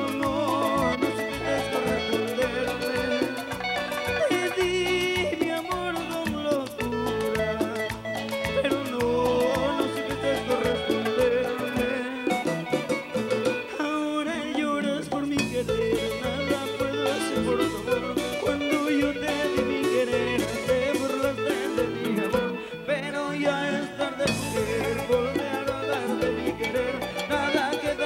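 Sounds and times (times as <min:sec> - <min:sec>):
dance percussion: 0:00.0 - 0:13.7, 0:14.4 - 0:22.6, 0:24.2 - 0:28.0
latin band playing: 0:00.0 - 0:28.0.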